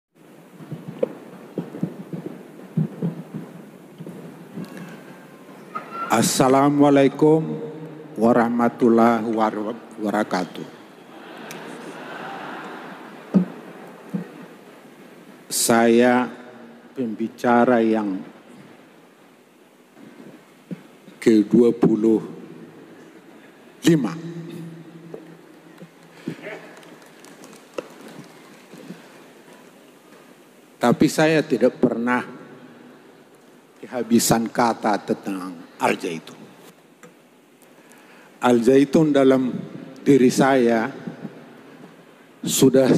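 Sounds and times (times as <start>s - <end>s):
large hall background noise: 0.2s - 42.9s
room and microphone hiss: 0.2s - 42.9s
soft dull low thumps: 0.7s - 4.8s.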